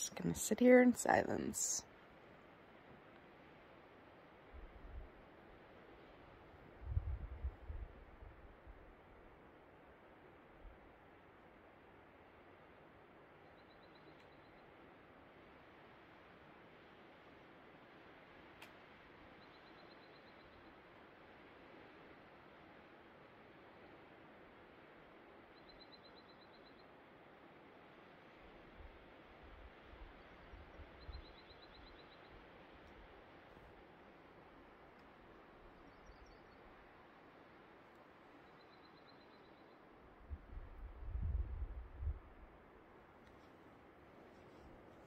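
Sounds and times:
low rumble on microphone: 6.8 - 8.6, 40.2 - 42.5.

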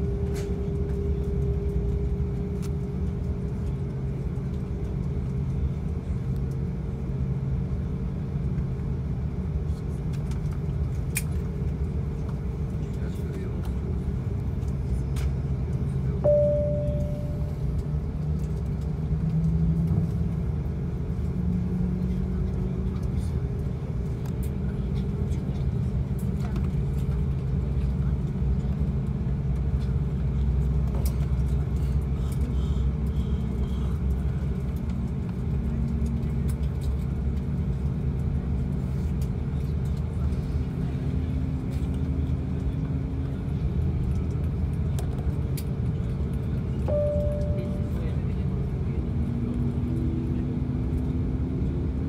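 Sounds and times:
aircraft cabin rumble and hum: 0.0 - 52.0
faint rising droning tones: 16.2 - 17.9.

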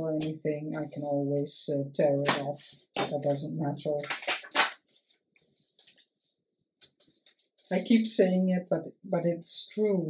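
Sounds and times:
paper rustling: 4.0 - 7.8.

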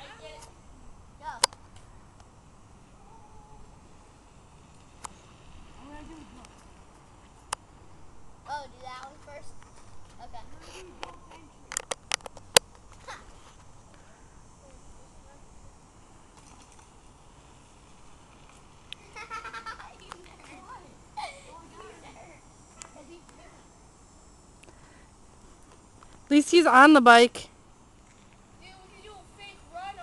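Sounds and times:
distant children's voices: 0.0 - 1.6, 2.8 - 4.1, 8.4 - 11.8, 17.3 - 23.8, 28.5 - 30.0.

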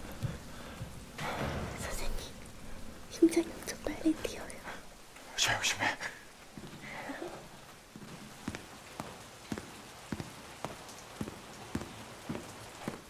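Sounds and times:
steady rain hiss: 0.0 - 13.0.

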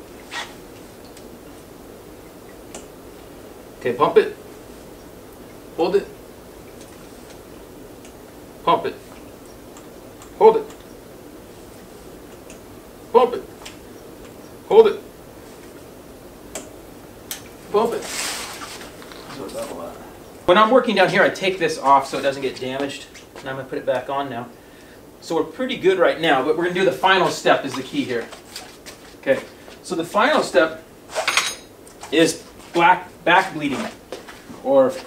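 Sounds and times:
low steady background noise: 0.0 - 35.0.

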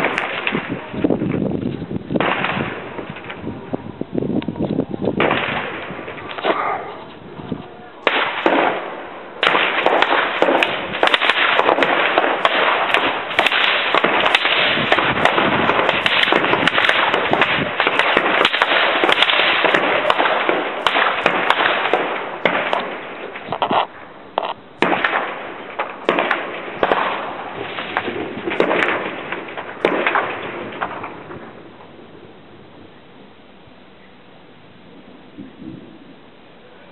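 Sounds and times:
heavy small-arms fire: 0.0 - 1.6, 2.2 - 3.5, 5.2 - 6.6, 8.0 - 31.7.

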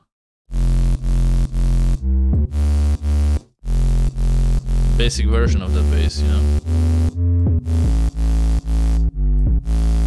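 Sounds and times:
pulsing synth bass: 0.5 - 10.0.

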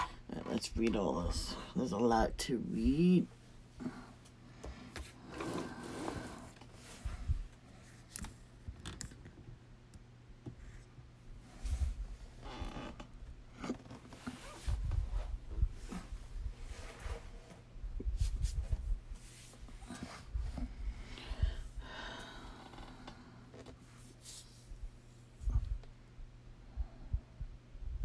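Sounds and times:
steady low hum: 0.0 - 28.0
rustling scrapes: 14.0 - 20.6.

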